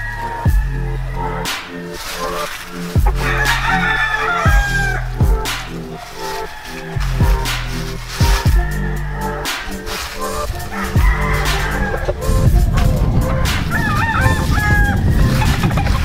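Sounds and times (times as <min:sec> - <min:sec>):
music with steady bass beat: 0:00.0 - 0:16.0
rooster crowing: 0:00.0 - 0:16.0.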